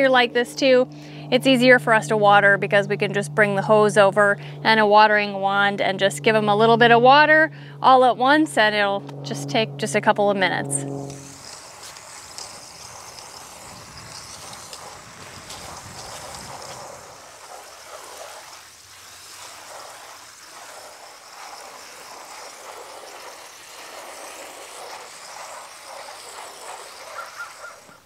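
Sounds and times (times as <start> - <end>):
water spraying from hose: 10.6 - 28.0.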